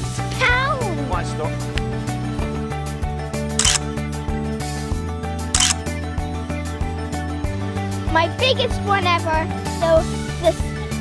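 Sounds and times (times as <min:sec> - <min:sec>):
background music sustained notes: 0:00.0 - 0:11.0
camera shutter clicks: 0:03.6 - 0:03.9, 0:05.6 - 0:05.8.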